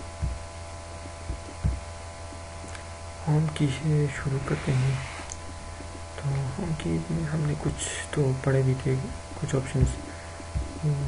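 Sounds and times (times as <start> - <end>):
soft low thumps: 0.0 - 2.7, 9.2 - 11.0
electrical hum: 0.0 - 11.0.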